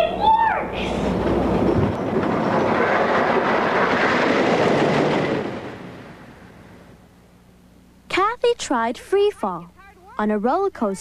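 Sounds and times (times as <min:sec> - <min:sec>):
roller coaster rumbling on track: 0:00.0 - 0:07.0.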